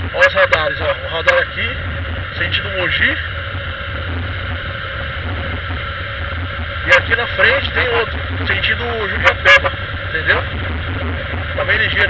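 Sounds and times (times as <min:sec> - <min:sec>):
motorcycle engine running: 0:00.0 - 0:12.0
wind rushing past microphone: 0:00.0 - 0:12.0.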